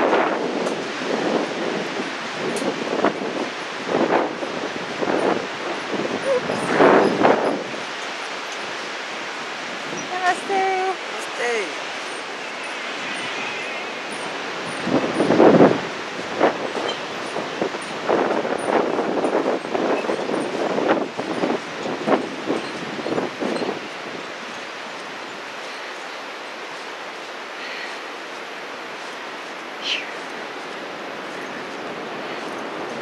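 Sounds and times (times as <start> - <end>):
steady rushing noise: 0.0 - 24.6.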